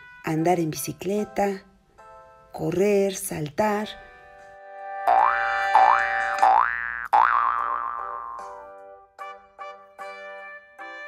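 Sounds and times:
cartoon spring boings: 5.0 - 8.7.

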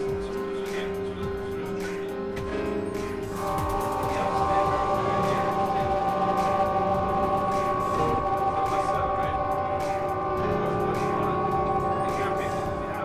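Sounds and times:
synthesizer drone: 0.0 - 13.0.

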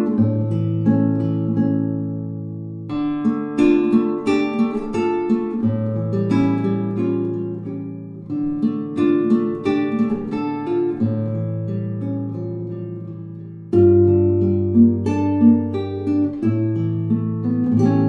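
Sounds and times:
acoustic guitar picking: 0.0 - 18.0.

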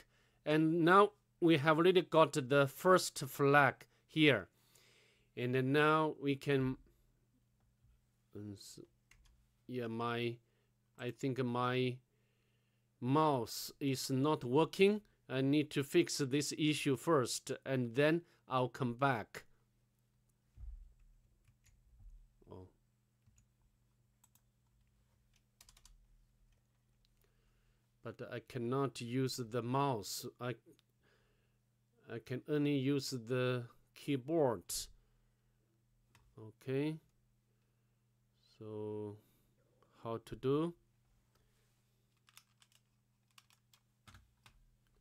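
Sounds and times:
computer keyboard keystrokes: 25.3 - 26.0, 42.2 - 44.6.

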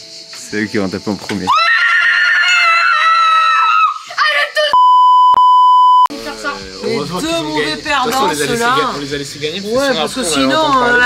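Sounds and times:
woman's high-pitched yell: 1.6 - 4.8
censor bleep tone: 4.8 - 6.1.

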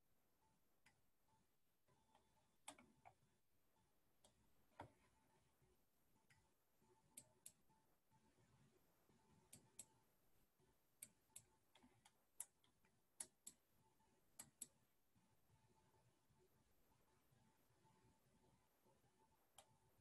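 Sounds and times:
computer mouse clicks: 2.0 - 3.2, 7.1 - 7.6, 9.4 - 10.0, 11.0 - 13.6, 14.4 - 14.8.

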